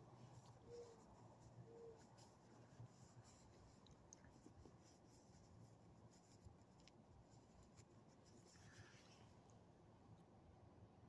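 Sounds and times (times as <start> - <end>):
soft scratches and clicks: 0.0 - 9.6.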